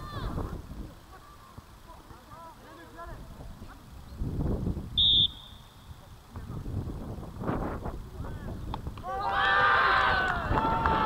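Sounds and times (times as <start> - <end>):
referee's whistle blast: 5.0 - 5.9.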